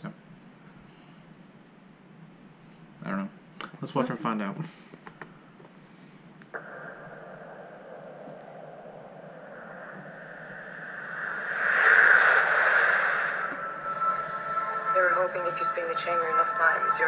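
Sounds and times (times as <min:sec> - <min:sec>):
rushing hiss: 0:09.6 - 0:14.6.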